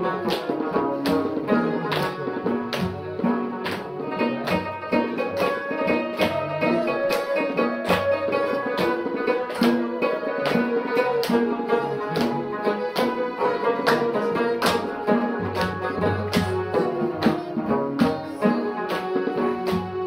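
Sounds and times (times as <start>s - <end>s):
hand clapping: 0.0s - 20.0s
hand-beaten drum: 0.0s - 20.0s
plucked lutes: 0.0s - 20.0s.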